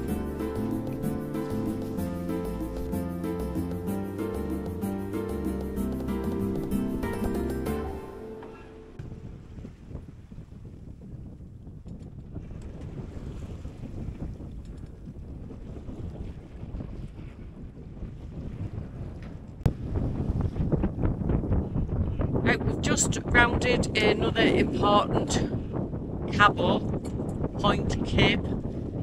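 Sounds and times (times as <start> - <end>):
water rushing past hull: 0.0 - 10.9
wind buffeting microphone: 9.0 - 29.0.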